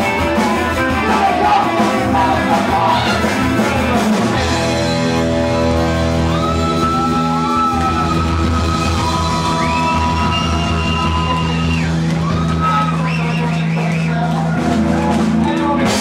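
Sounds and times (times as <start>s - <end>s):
live rock band playing: 0.0s - 16.0s
sliding high held notes: 1.0s - 3.6s
steady low drone: 1.0s - 6.5s.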